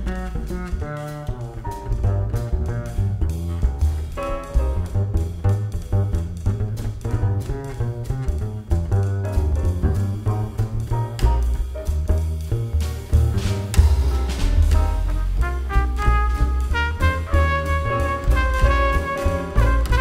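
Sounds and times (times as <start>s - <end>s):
double bass: 0.0s - 20.0s
drum kit: 0.0s - 20.0s.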